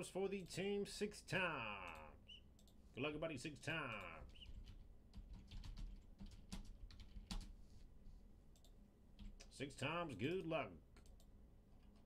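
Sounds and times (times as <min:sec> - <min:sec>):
faint keyboard typing: 0:01.7 - 0:02.8, 0:03.4 - 0:07.9, 0:08.5 - 0:09.6, 0:10.2 - 0:12.0.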